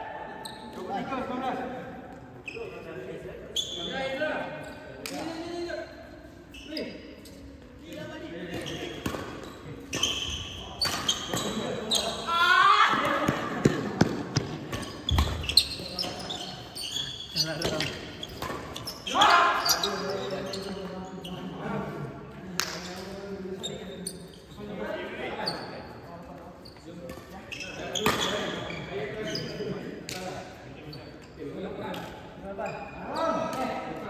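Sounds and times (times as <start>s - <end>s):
shoe squeaks: 0.4s - 1.1s, 2.4s - 5.6s, 6.4s - 7.8s, 8.4s - 12.3s, 14.7s - 21.6s, 23.0s - 29.9s, 30.8s - 31.4s, 32.5s - 33.7s.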